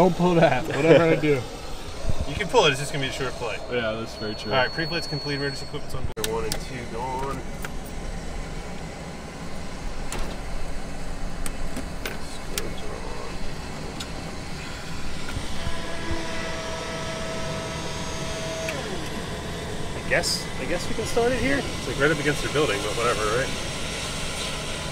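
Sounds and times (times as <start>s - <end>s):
electrical hum: 0.0s - 24.9s
high whine: 0.0s - 24.9s.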